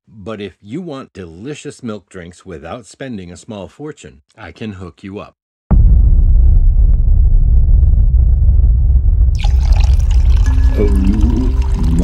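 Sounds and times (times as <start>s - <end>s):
person singing: 10.7s - 12.0s.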